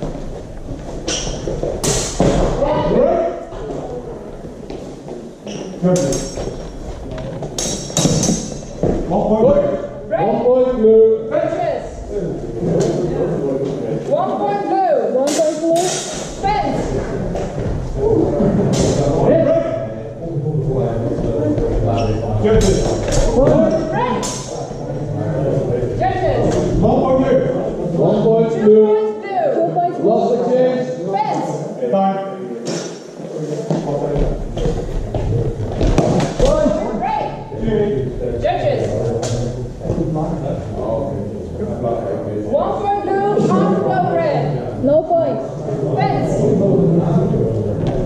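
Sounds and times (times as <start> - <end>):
thud: 1.2 - 2.6
longsword fencing knocks: 1.8 - 2.5, 7.6 - 8.7.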